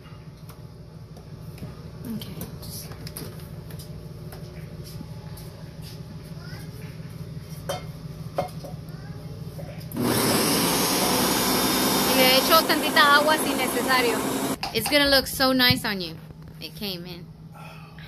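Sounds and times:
blender running: 9.9s - 14.6s.

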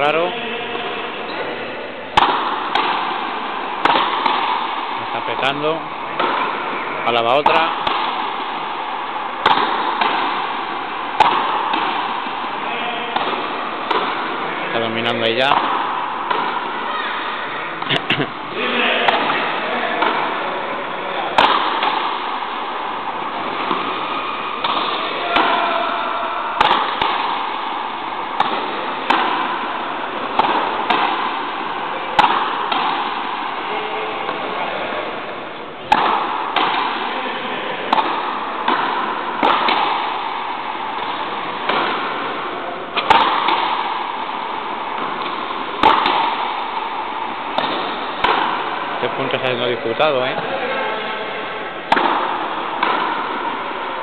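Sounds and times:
rackets striking rubber ball: 0.0s - 54.0s
ball smacking wall: 2.1s - 17.2s, 17.8s - 35.2s, 35.8s - 51.0s, 51.8s - 54.0s.

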